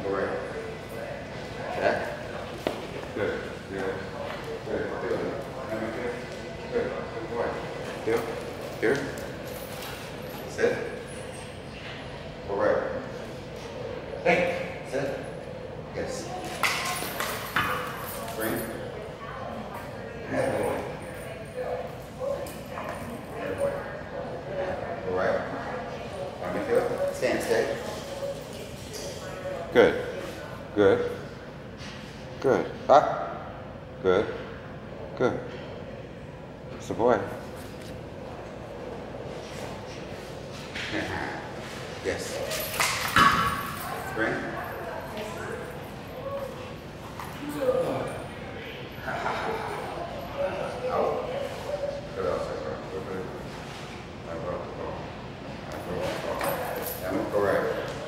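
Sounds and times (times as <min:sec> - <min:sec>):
murmur of large tiled room: 0:00.0 - 0:58.0.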